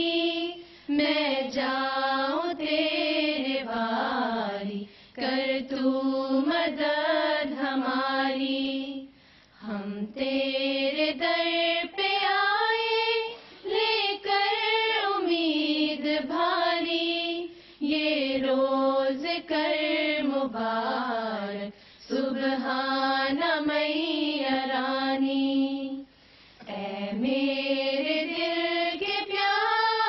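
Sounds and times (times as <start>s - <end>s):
women singing without instruments: 0.0s - 30.0s.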